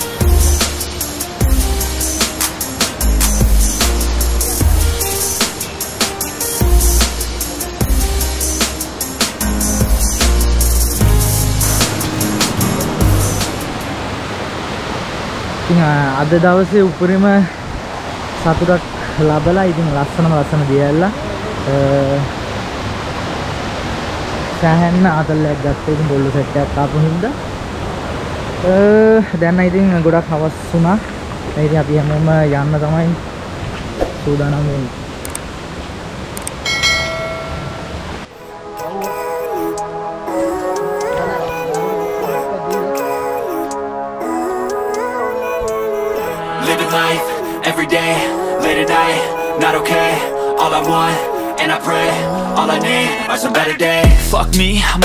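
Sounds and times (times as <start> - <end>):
background music with a beat: 0.0 - 13.9, 53.6 - 55.0
stream water rushing over rocks: 0.0 - 38.3
click: 35.2 - 35.4, 36.4 - 36.6
bell-like ding: 36.6 - 38.1
person speaking: 38.7 - 44.8.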